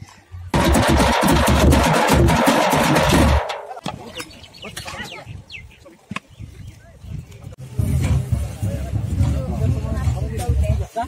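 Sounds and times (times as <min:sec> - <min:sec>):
drums beating fast: 0:00.5 - 0:03.8.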